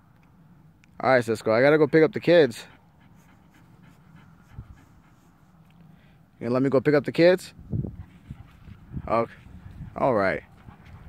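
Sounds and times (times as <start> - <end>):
dog panting: 1.4 - 6.0, 7.8 - 11.0.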